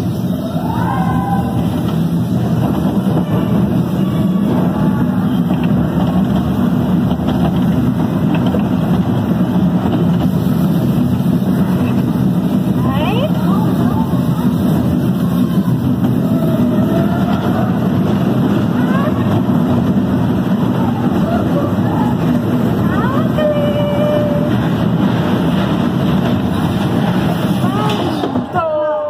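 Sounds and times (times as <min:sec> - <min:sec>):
roller coaster rumbling on track: 0:00.0 - 0:29.0
voices: 0:00.0 - 0:29.0.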